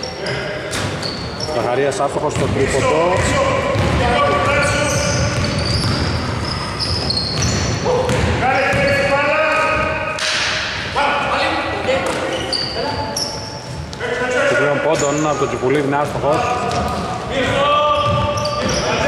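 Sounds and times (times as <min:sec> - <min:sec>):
sneakers squeaking: 0:00.0 - 0:19.0
basketball bouncing on hardwood: 0:03.2 - 0:04.1, 0:05.2 - 0:06.2.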